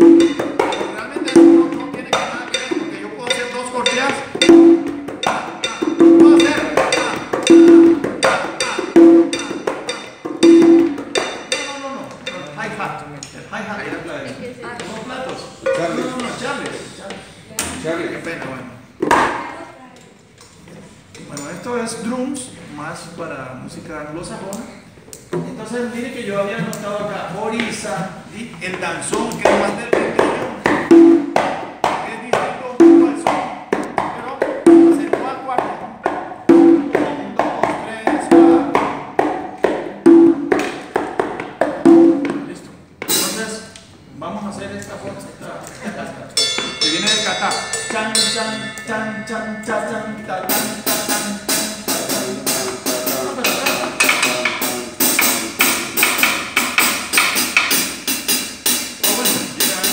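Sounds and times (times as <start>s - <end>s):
sticks on cymbal and drums: 0.0s - 12.6s, 28.7s - 31.8s, 41.8s - 43.9s, 46.4s - 59.9s
congas played by hand: 0.0s - 20.6s, 26.5s - 44.1s, 44.9s - 59.9s.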